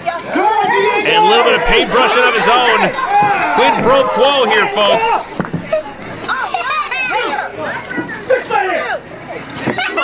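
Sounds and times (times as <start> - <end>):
crowd chatter: 0.0 - 10.0
children shouting: 0.4 - 8.2.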